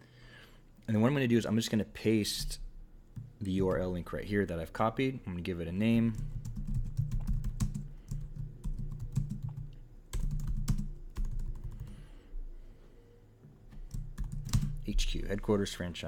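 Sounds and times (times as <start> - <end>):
computer keyboard typing: 6.1 - 11.9, 13.8 - 14.9.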